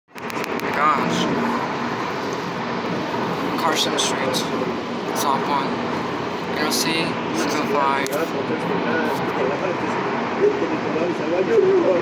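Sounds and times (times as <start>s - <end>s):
car road and engine noise: 0.1s - 12.0s.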